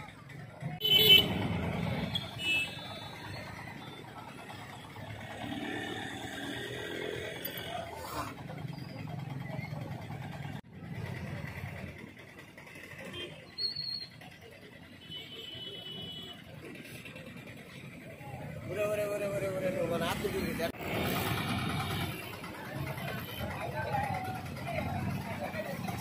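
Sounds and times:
motorcycles passing: 0.0 - 13.4, 16.4 - 26.0.

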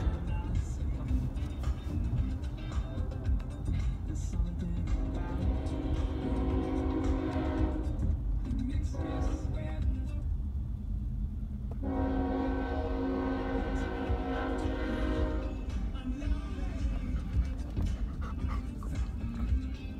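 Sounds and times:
road noise inside moving car: 0.0 - 19.9
locomotive air horn blasts: 5.0 - 8.1, 8.8 - 9.8, 11.8 - 15.8.

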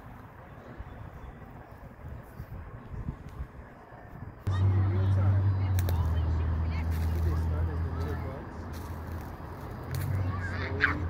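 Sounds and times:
faint voices: 0.3 - 11.0
low rumble: 4.4 - 10.6.

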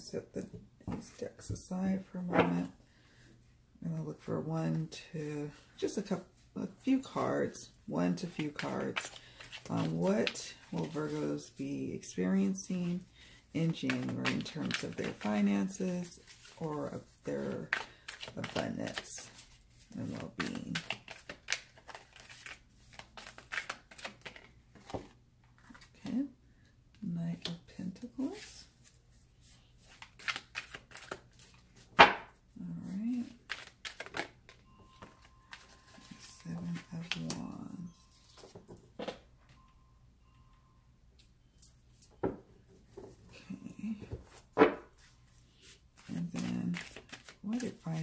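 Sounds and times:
cards being shuffled: 17.5 - 25.9, 29.8 - 32.2, 32.8 - 34.4, 45.6 - 48.0.

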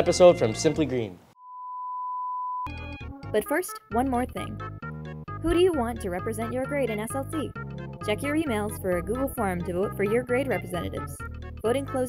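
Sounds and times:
steady pure test tone beep: 1.4 - 2.9.

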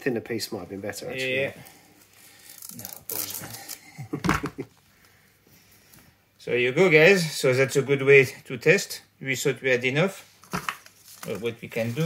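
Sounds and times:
man laughing: 3.6 - 4.7.

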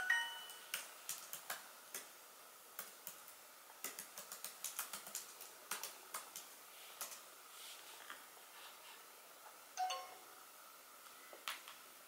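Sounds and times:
laptop keyboard typing: 0.1 - 2.1, 2.8 - 7.3.

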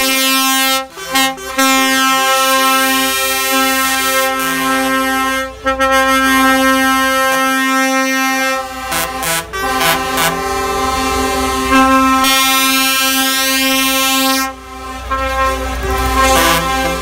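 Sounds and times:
truck air horn blasts: 0.0 - 17.0
truck engines rumbling: 0.0 - 17.0.

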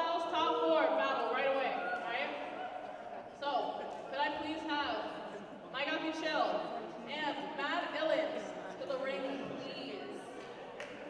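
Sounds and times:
voices in echoing hall: 0.0 - 11.0.

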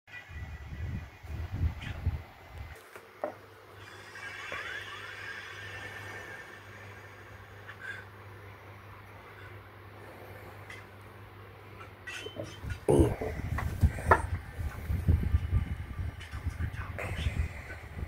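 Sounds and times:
steady low hum: 0.3 - 18.0
microphone handling rumble: 12.6 - 18.0.

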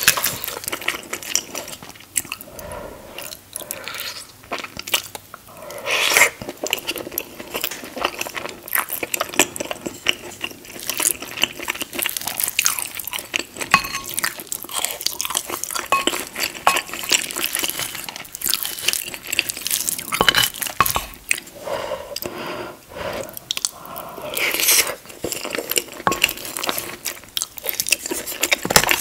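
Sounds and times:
wet chewing sounds: 0.0 - 22.4, 23.1 - 29.0
spoon scooping from ceramic dish: 13.7 - 14.2.

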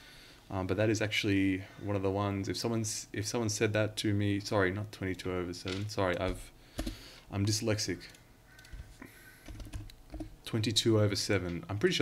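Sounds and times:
typing on computer keyboard: 9.4 - 10.4.

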